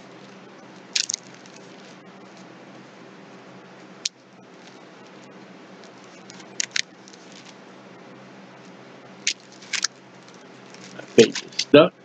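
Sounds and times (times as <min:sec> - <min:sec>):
low steady hum: 0:00.0 - 0:12.0
paper pages crackling: 0:00.2 - 0:02.5, 0:05.8 - 0:07.6, 0:09.3 - 0:11.7.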